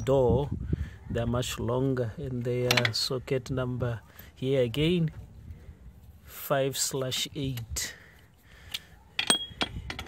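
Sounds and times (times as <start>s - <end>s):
metal bolts clinking: 2.6s - 3.1s, 9.2s - 10.0s.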